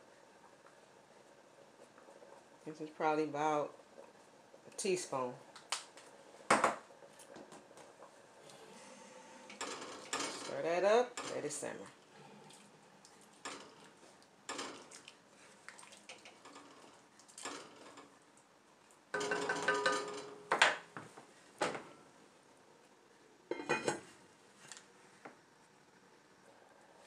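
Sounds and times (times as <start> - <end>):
heavy pot lid clanking: 19.2 - 20.6
spoon knocking against pot: 19.2 - 20.8.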